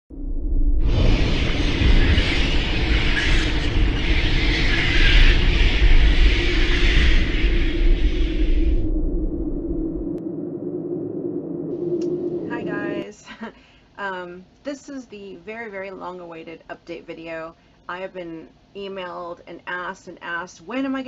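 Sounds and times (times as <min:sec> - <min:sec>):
deep rumble: 0:00.0 - 0:13.0
steady held tone: 0:00.1 - 0:13.1
hissing wash: 0:00.7 - 0:10.2.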